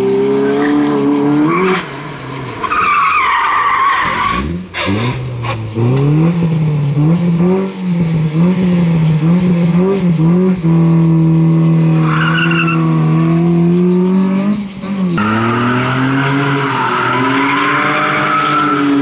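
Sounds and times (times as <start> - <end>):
car engine revving: 0.0 - 19.0
tyres squealing: 2.6 - 5.7, 11.9 - 13.2, 15.2 - 19.0.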